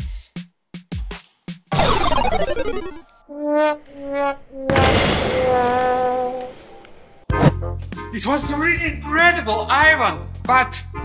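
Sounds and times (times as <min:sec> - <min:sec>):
burst of noise: 0:01.8 - 0:03.0.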